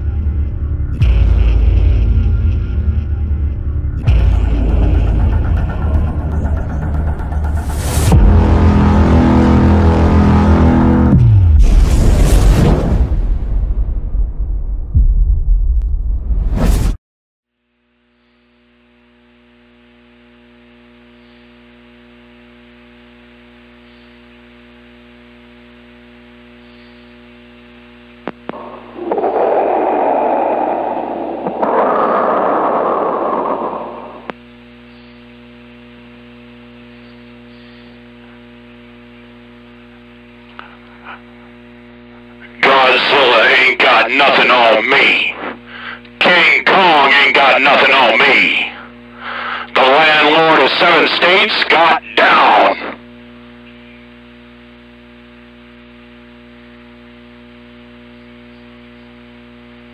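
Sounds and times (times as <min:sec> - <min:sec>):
radio hum and hiss: 0:17.8 - 0:59.9
distorted radio voices: 0:28.3 - 0:35.3, 0:40.5 - 0:53.0
loud burst of radio noise: 0:28.5 - 0:35.6, 0:42.3 - 0:53.0.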